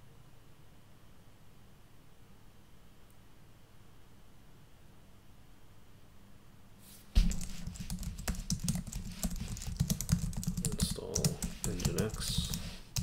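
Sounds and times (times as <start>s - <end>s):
keyboard typing: 7.2s - 13.0s.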